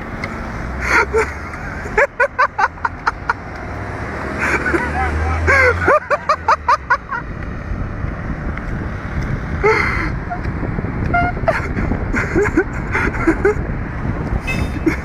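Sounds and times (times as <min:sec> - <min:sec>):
steady low rumble: 0:00.0 - 0:15.0
people laughing: 0:00.8 - 0:03.5, 0:04.4 - 0:07.3, 0:11.2 - 0:13.6.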